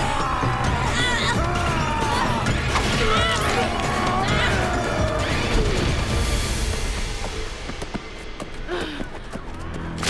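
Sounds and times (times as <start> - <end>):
wordless yells and battle cries: 0.0 - 6.1
loud dramatic music: 0.0 - 7.9.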